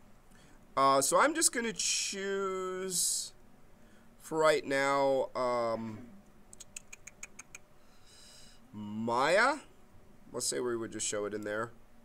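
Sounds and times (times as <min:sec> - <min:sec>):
computer mouse clicks: 0:06.5 - 0:07.6.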